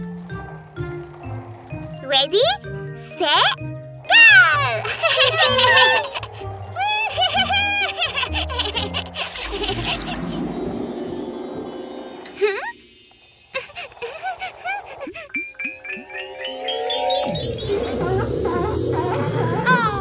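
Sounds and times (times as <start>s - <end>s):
children's music: 0.0s - 10.2s
babies squealing and giggling: 4.1s - 10.4s, 13.6s - 15.9s
whoosh with rising swoop: 9.2s - 14.5s
sparkly magical shimmer: 9.3s - 19.9s.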